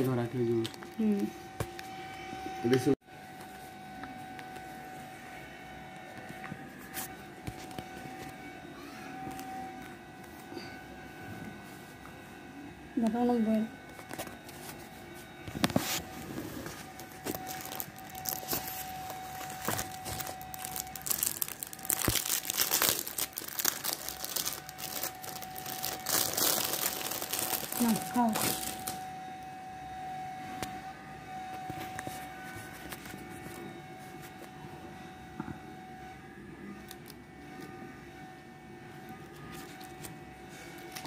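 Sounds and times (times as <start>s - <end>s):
plastic wrapping crinkling and tearing: 15.5s - 29.0s.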